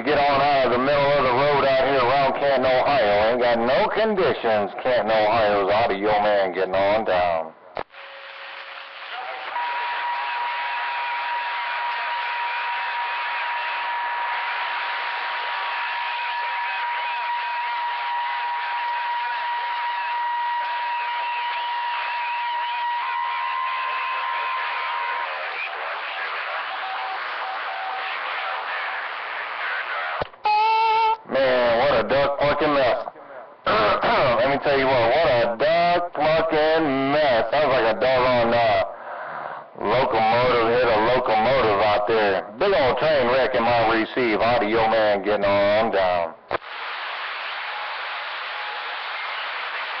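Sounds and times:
strong voice over radio: 0.0s - 7.5s, 31.2s - 39.0s, 39.8s - 46.4s
garbled overlapping radio voices: 0.0s - 10.2s, 10.9s - 50.0s
radio static: 0.0s - 30.3s, 31.3s - 50.0s
short radio tone: 7.8s - 34.3s, 46.5s - 50.0s
steady radio whistle: 7.8s - 44.1s, 44.8s - 50.0s.

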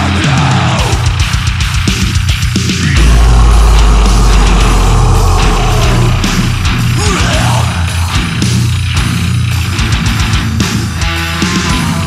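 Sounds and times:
metal band playing: 2.8s - 11.4s.

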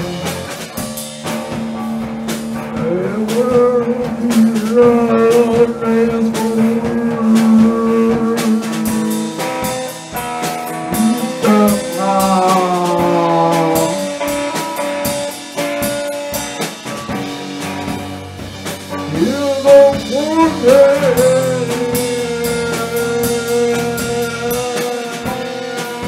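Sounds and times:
person singing: 0.0s - 0.6s, 2.8s - 10.0s, 10.7s - 14.5s, 19.0s - 26.0s
drum kit: 0.0s - 26.0s
guitar held tones: 2.8s - 14.6s, 19.0s - 26.0s.

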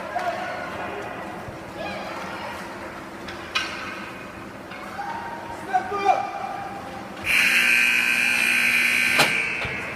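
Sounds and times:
scoreboard horn held tone: 7.3s - 9.6s.

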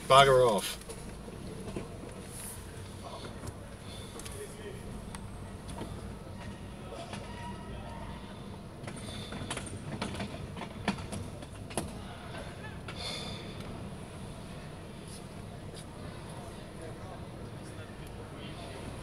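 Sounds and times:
small vehicle rolling over tiles: 8.8s - 12.0s.

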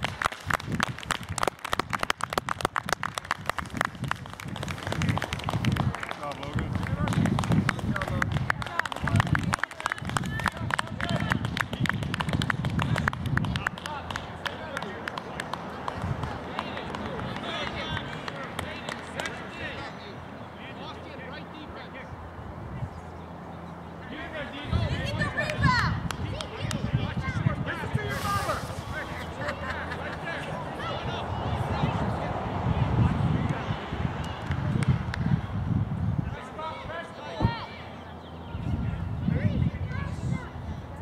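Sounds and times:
spectators clapping: 0.0s - 19.4s
people talking: 6.1s - 22.1s, 24.0s - 35.4s.

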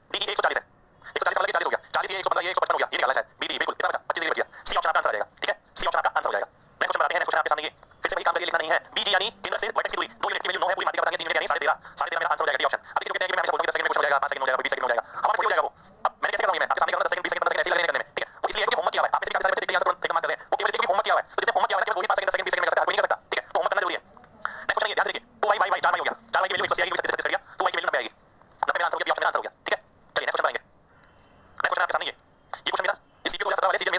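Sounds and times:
man talking: 0.1s - 30.7s, 31.6s - 33.9s.

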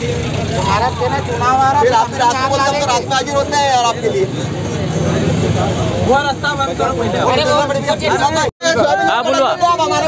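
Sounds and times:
men talking and calling out: 0.0s - 10.0s.

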